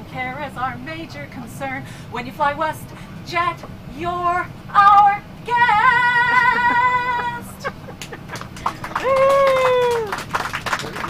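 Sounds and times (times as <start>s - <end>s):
laughter: 6.3s - 8.8s
high voice whooping: 8.8s - 10.2s.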